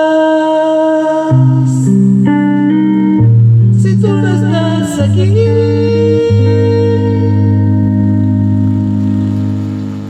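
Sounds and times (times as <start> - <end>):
sustained backing track chord: 1.2 - 10.0.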